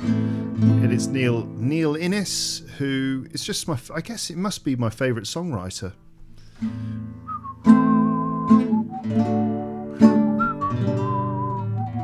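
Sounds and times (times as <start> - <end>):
classical guitar chords: 0.0 - 3.4, 6.0 - 12.0
whistled melody: 7.3 - 12.0.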